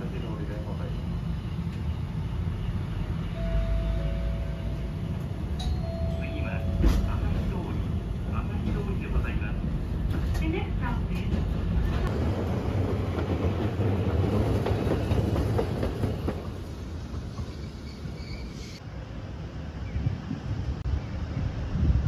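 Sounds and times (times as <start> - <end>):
streetcar rumbling: 0.0 - 22.0.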